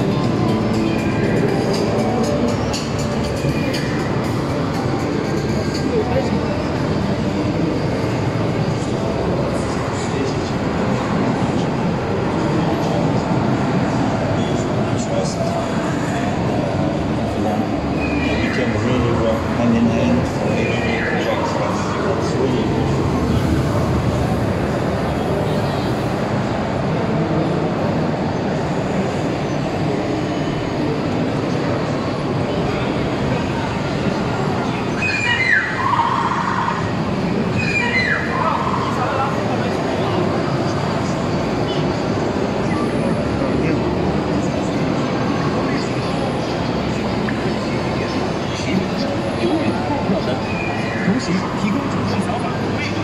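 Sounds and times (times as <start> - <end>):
busy exhibition hall noise: 0.0 - 53.0
indistinct voices: 0.0 - 53.0
steady low rumble: 21.8 - 26.6.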